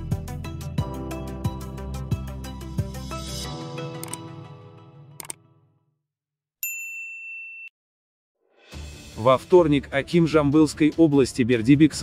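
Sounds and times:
quick clicks: 5.2 - 5.4
notification bell ding: 6.6 - 7.7.

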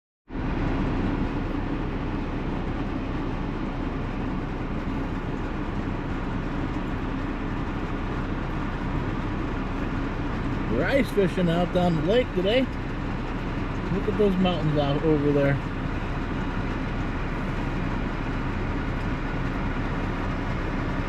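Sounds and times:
car driving: 0.3 - 21.0.

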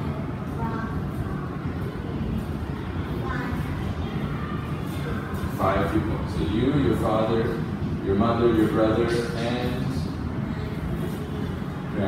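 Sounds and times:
faint child's voice: 0.0 - 5.6
low room rumble: 0.0 - 12.0.

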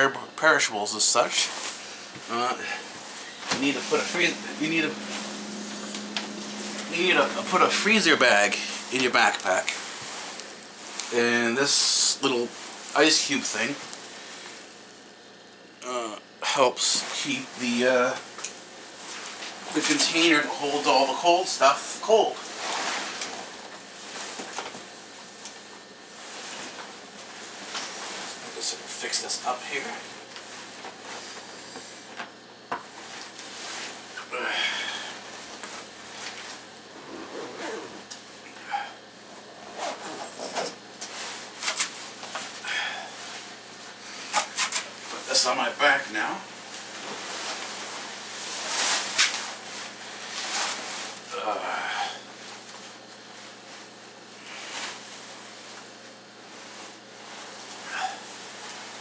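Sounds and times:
room noise hiss: 0.0 - 59.0
man speaking: 3.5 - 5.2, 6.8 - 9.8.

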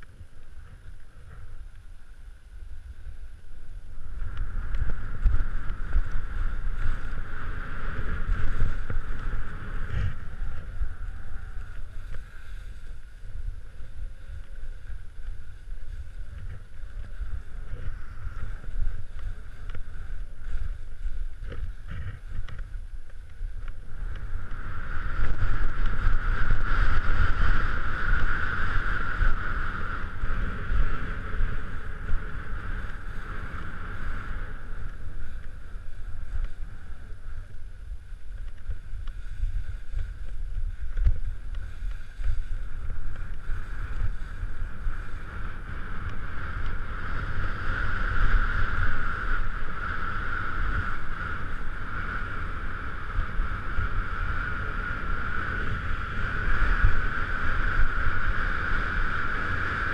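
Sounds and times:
skis scraping over snow: 0.0 - 59.9
wind buffeting microphone: 0.0 - 59.9.

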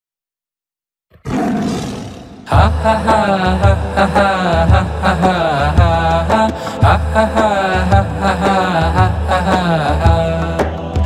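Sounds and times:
lion roaring: 1.1 - 2.5.

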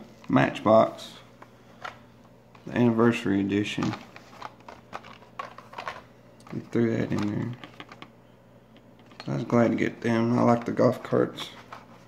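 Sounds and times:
plastic blister packs clicking: 3.8 - 8.1.

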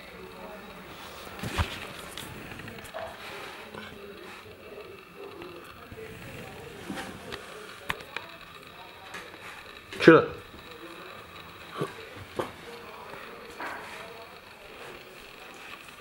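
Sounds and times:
faint indistinct voices: 0.0 - 16.0.

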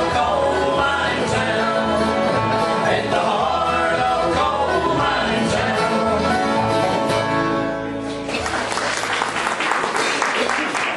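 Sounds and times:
bluegrass band playing: 0.0 - 8.8.

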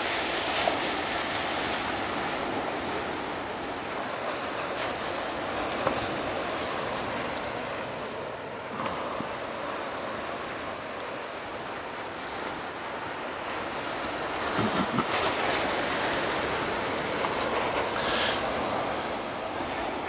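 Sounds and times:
waves breaking on a beach: 0.0 - 20.0.

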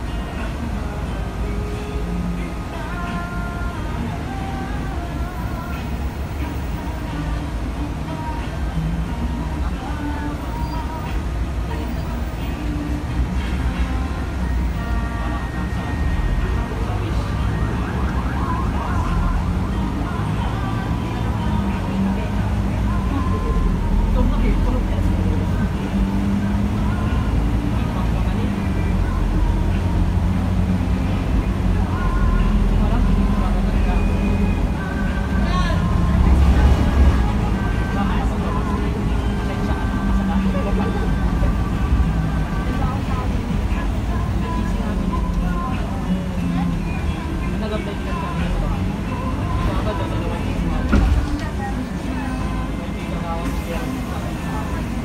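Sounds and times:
bus engine drone: 0.0 - 55.0.

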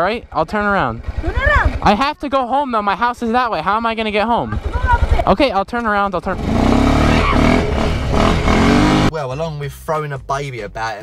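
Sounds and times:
quad bike engine revving: 0.0 - 9.1.

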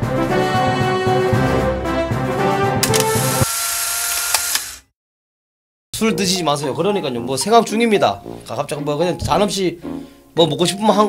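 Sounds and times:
click: 2.8 - 3.5, 4.1 - 4.8.

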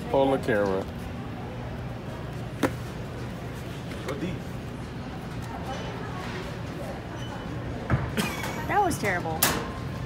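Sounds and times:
store background hum: 0.0 - 10.0.

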